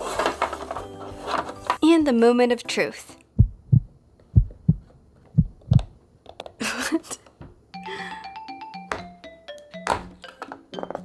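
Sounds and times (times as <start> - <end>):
background music: 0.1 - 3.6, 7.7 - 11.0.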